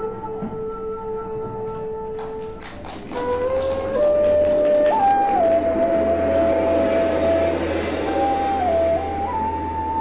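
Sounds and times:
lead melody holding long note: 0.0s - 10.0s
opera accompaniment ensemble: 0.0s - 10.0s.

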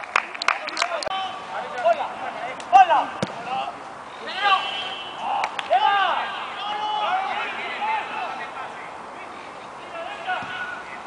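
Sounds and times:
football players shouting: 1.1s - 11.0s
ball being kicked: 3.1s - 3.5s.

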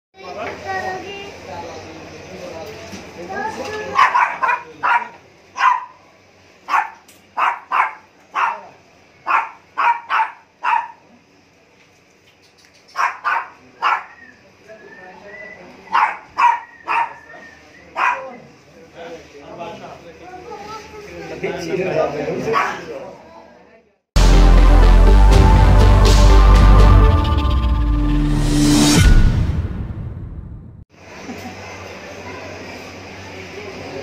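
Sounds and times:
small dogs yapping: 3.8s - 6.0s, 6.7s - 11.1s, 12.8s - 14.4s, 15.8s - 18.4s, 22.5s - 22.9s.

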